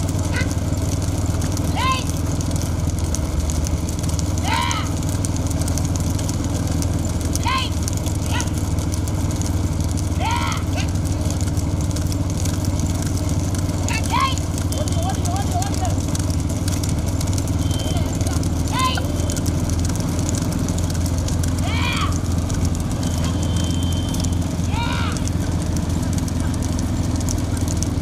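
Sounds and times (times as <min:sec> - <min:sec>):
riders shouting: 0:00.0 - 0:03.0, 0:03.8 - 0:27.9
motorcycle engines droning: 0:00.0 - 0:28.0.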